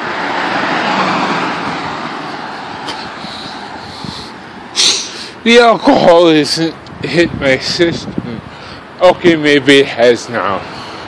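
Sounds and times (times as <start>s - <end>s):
car driving past: 0.0s - 5.3s.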